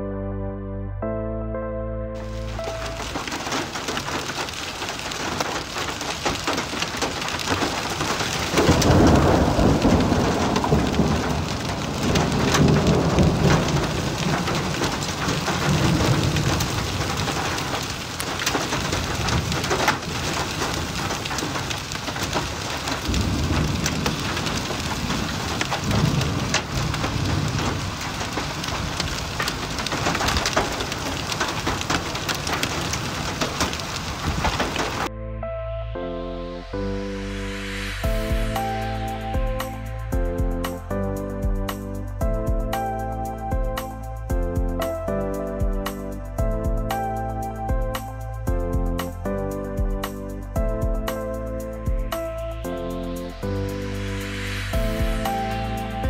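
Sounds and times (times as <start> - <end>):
heavy rain and hail on road: 2.2 - 35.1, 50.0 - 56.0
deep low rumbles: 50.6 - 55.5.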